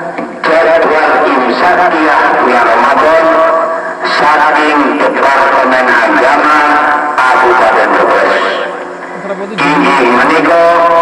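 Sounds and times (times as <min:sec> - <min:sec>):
man chanting: 0:00.4 - 0:08.8, 0:09.6 - 0:11.0.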